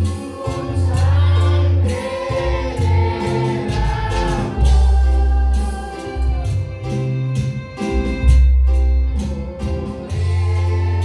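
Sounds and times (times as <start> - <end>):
man singing into microphone: 0.0 - 6.5
deep bass notes: 0.0 - 11.0
keyboard: 0.0 - 11.0.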